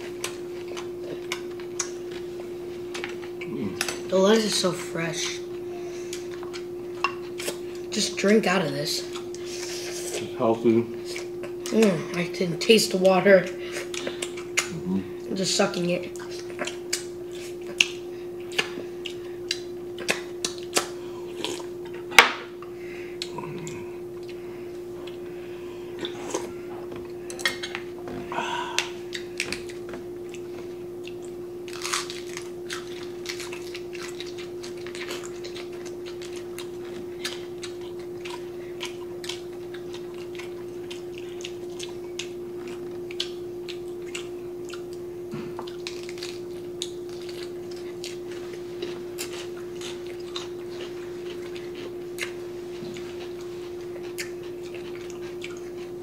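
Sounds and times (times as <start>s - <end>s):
chewing and mouth clicks: 0.0s - 4.1s, 6.1s - 8.4s, 9.0s - 10.2s, 11.0s - 12.3s, 13.7s - 14.8s, 16.0s - 22.0s, 22.6s - 24.4s, 25.0s - 25.2s, 28.8s - 56.0s
steady low hum: 0.0s - 56.0s.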